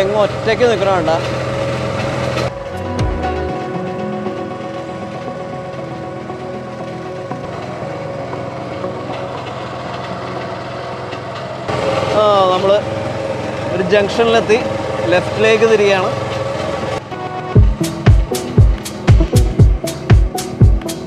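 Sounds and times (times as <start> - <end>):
motorboat engine running: 0.0 - 21.0.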